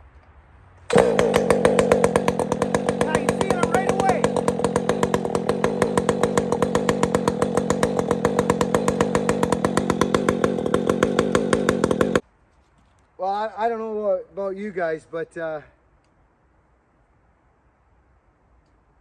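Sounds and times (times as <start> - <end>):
chainsaw running: 0.9 - 12.2.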